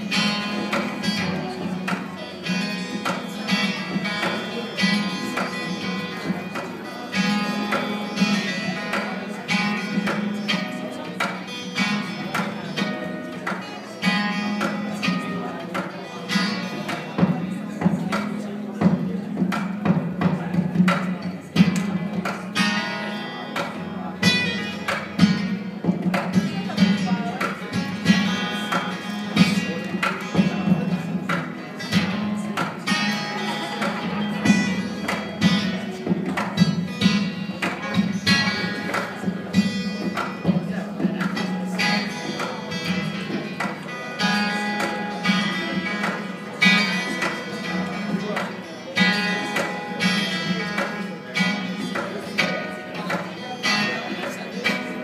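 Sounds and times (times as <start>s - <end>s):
acoustic guitar plucked notes: 0.0s - 55.0s.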